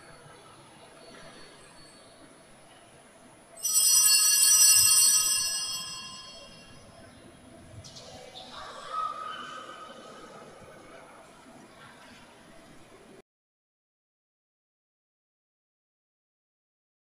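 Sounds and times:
bell-like ringing: 3.6s - 7.0s.

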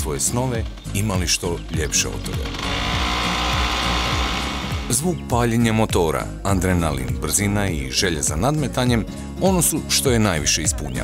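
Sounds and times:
background music: 0.0s - 11.0s
go-kart engine running: 2.5s - 4.9s.

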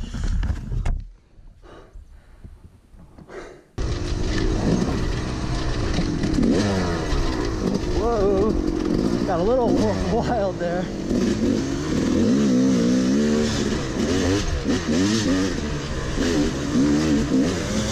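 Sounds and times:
dirt bike engine revving: 3.8s - 17.9s.

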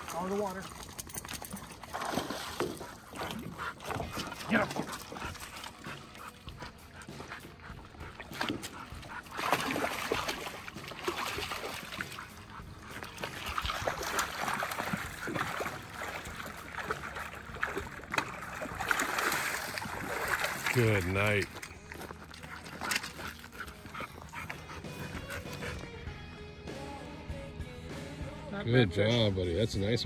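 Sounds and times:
water splashing: 0.0s - 25.9s
dog vocalizing excitedly: 2.8s - 10.7s, 22.4s - 26.0s.

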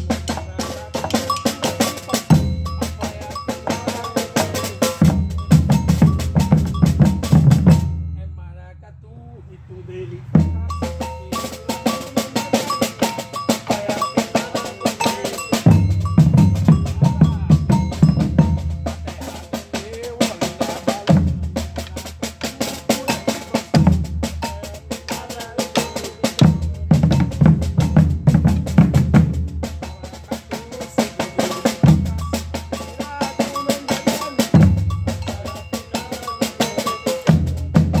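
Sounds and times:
fast snare drum pattern: 0.0s - 8.0s, 10.4s - 38.0s
bass drums: 0.0s - 8.3s, 10.3s - 38.0s
ringing metal bell: 0.0s - 8.6s, 10.4s - 20.9s, 22.7s - 24.8s, 25.5s - 28.5s, 29.7s - 38.0s.

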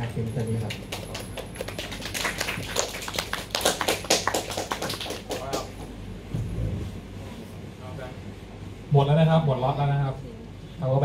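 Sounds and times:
audience clapping: 0.4s - 5.9s.

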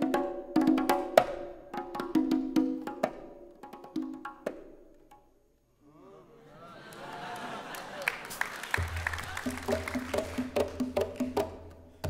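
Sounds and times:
hand drums and drum kit: 0.0s - 5.4s, 8.8s - 12.0s.

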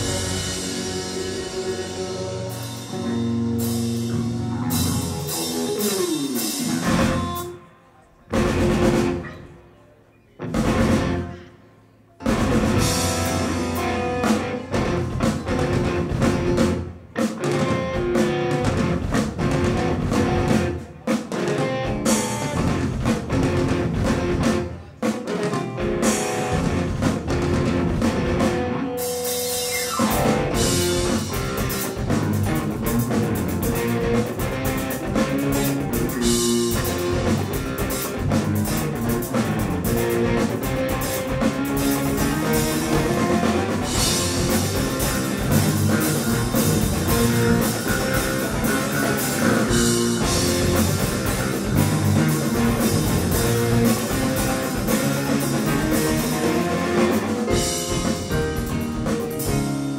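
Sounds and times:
electric bass: 0.0s - 7.6s, 8.3s - 9.4s, 10.5s - 11.4s, 12.2s - 20.8s, 21.8s - 24.7s, 25.8s - 59.9s
drum kit: 0.0s - 9.6s, 10.4s - 11.5s, 12.2s - 59.9s
electric guitar: 0.0s - 9.8s, 10.4s - 59.9s
keyboards: 0.0s - 59.9s.

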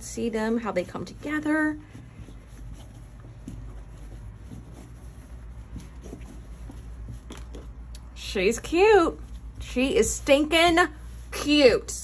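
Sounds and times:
fabric rustling: 0.0s - 12.0s
soft taps: 1.8s - 8.1s.

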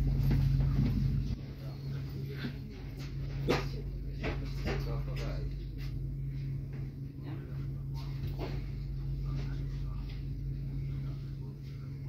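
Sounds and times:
train carriage hum: 0.0s - 12.0s.

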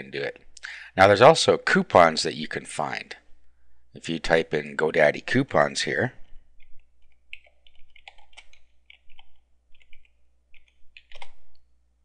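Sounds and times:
typing on computer keyboard: 6.6s - 11.4s.

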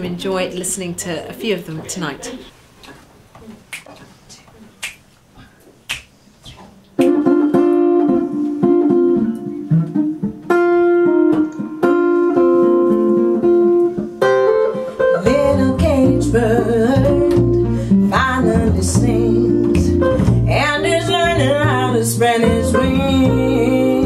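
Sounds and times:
finger snaps: 3.7s - 4.1s, 4.8s - 5.0s, 5.9s - 7.8s
guitar chords ringing: 7.0s - 24.0s
upright double bass: 15.2s - 24.0s.

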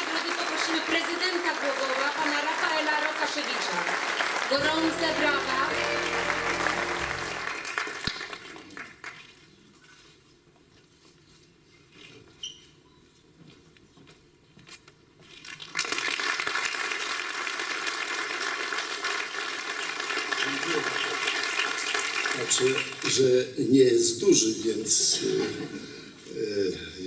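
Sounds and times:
audience applause: 0.0s - 9.2s, 15.7s - 23.3s.

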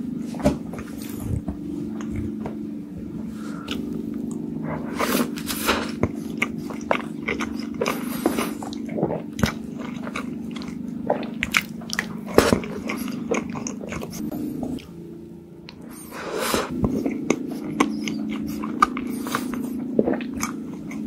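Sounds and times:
steady low hum: 0.0s - 21.0s
chewing: 0.8s - 2.6s, 3.3s - 15.0s, 15.7s - 21.0s.

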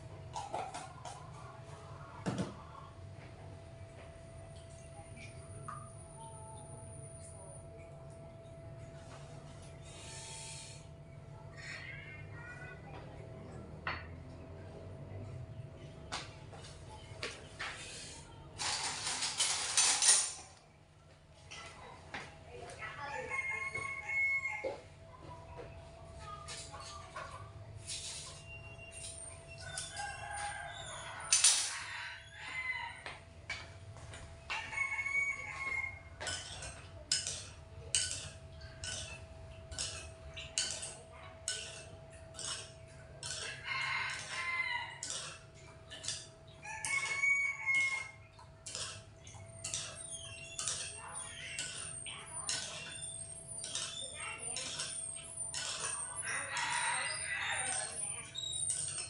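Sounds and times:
rooster crowing: 23.0s - 24.8s, 29.6s - 33.2s, 34.5s - 36.2s, 43.3s - 45.4s, 46.6s - 48.2s, 56.2s - 58.2s
chickens clucking: 34.5s - 59.0s.

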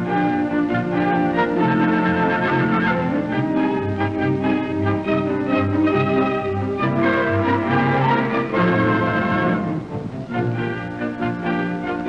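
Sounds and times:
orchestral music with strings and brass: 0.0s - 12.0s.

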